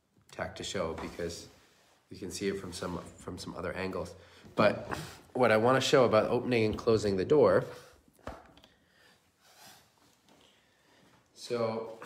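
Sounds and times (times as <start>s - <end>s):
person breathing: 4.1s - 5.4s, 7.7s - 11.3s.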